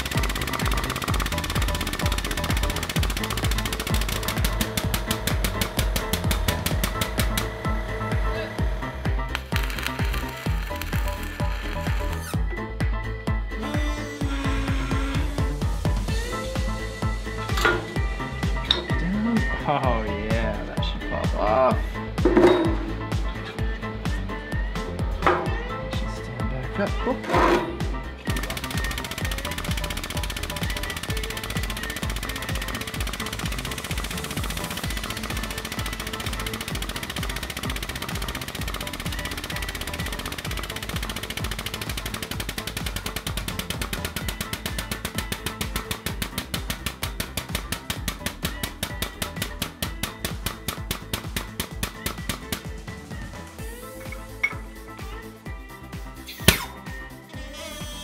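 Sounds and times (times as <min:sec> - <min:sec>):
air pump chattering: 0:00.0 - 0:12.4, 0:27.2 - 0:52.8.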